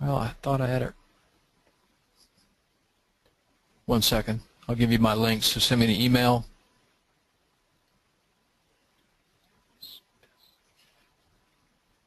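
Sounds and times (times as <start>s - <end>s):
high-pitched squeak: 9.8s - 10.7s.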